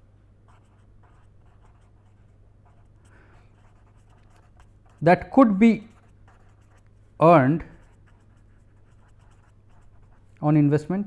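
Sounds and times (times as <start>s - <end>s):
low steady hum: 0.0s - 11.0s
pen scratching on paper: 0.5s - 6.9s, 7.7s - 10.2s.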